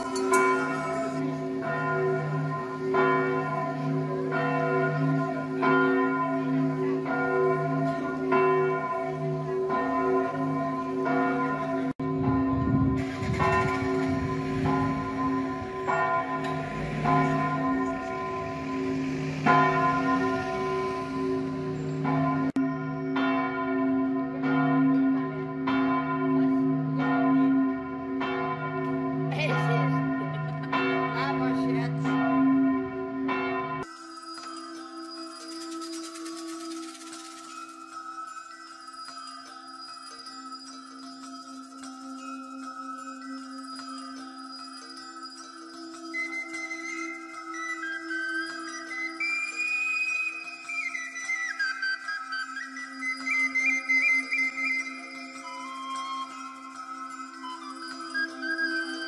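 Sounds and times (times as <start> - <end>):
church bells ringing: 0.0 - 51.6, 52.3 - 59.0
wind rumble on microphone: 12.0 - 15.8.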